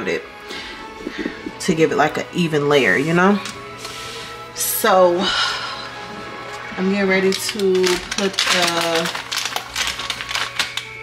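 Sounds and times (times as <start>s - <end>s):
packaging crinkling and rustling: 7.1s - 11.0s.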